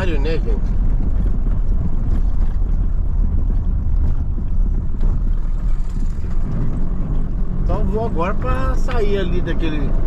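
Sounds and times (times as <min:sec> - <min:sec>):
diesel van engine rumble: 0:00.0 - 0:10.0.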